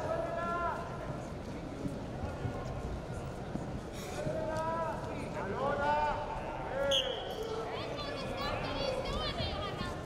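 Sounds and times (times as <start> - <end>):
referee's whistle: 6.9 - 7.3.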